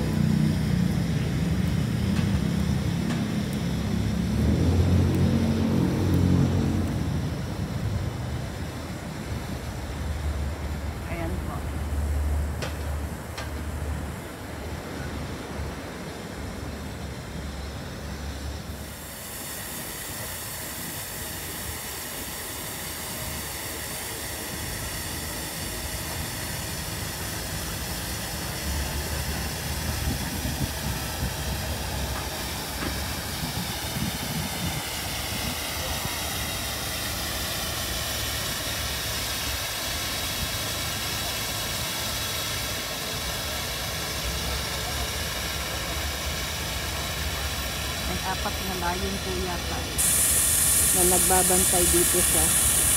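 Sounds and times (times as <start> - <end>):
city road traffic: 0.0 - 52.9
wind buffeting microphone: 29.8 - 32.1, 32.9 - 35.7.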